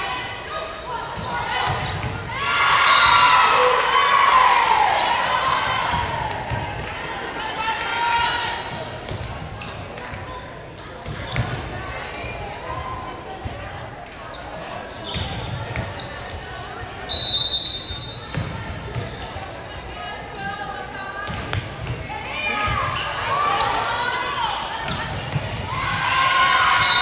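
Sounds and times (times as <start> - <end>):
referee's whistle: 2.8 - 3.4, 17.1 - 18.3, 26.8 - 27.0
voices chattering: 4.5 - 27.0.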